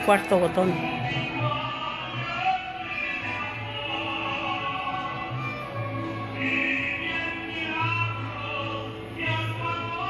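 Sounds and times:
mariachi music from television: 0.0s - 10.0s.

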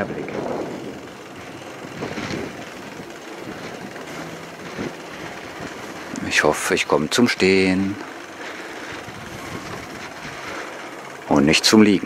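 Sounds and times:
bicycle rolling on pavement: 0.0s - 12.0s.

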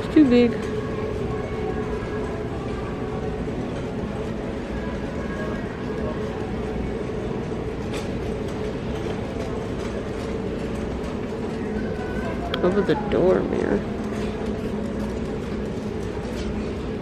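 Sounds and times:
faint indistinct voices: 0.0s - 17.0s
store hum: 0.0s - 17.0s.

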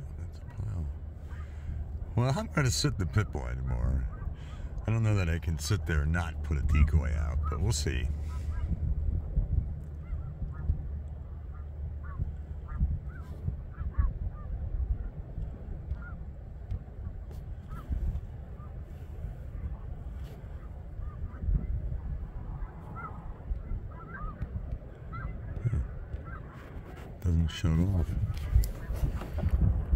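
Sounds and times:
low rumble: 0.0s - 29.9s.

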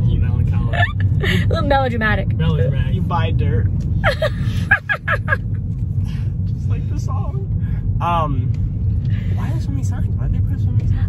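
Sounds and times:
car driving rumble inside cabin: 0.0s - 11.0s.

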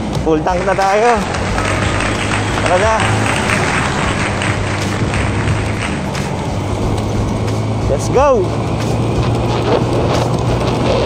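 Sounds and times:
road and wind noise: 0.0s - 11.0s
scooter engine running: 0.4s - 11.0s.

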